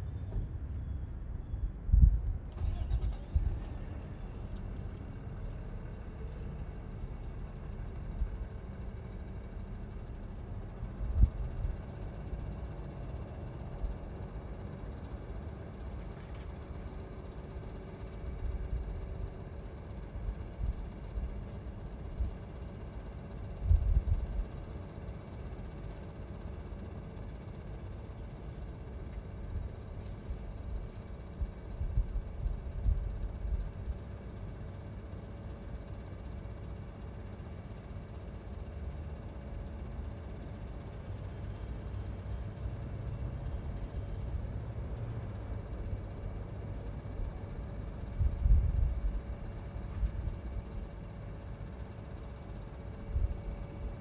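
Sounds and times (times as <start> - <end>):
low outdoor rumble: 0.0 - 54.0.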